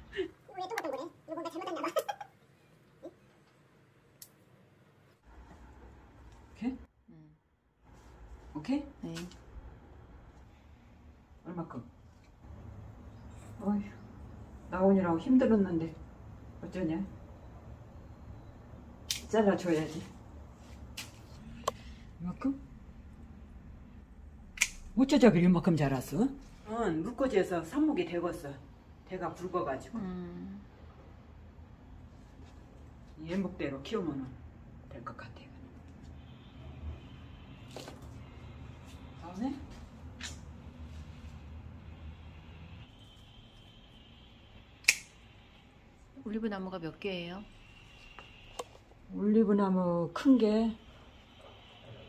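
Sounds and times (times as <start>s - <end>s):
pruning shears snipping: 44.8s - 45.1s
woman's voice: 46.2s - 47.5s.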